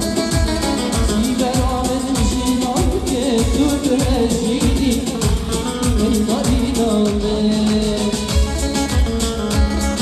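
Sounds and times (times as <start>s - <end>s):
band with keyboard and plucked strings: 0.0s - 10.0s
man singing: 0.0s - 10.0s
steady drum beat: 0.0s - 10.0s.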